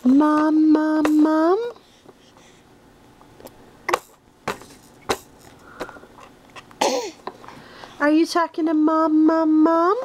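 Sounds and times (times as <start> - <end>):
baby sneezing: 6.8 - 7.2.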